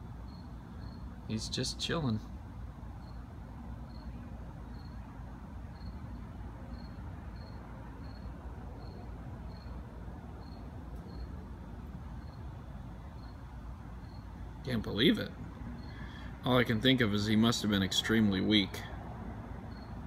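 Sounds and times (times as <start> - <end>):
cricket chirping: 0.0 - 20.0
low outdoor rumble: 0.0 - 20.0.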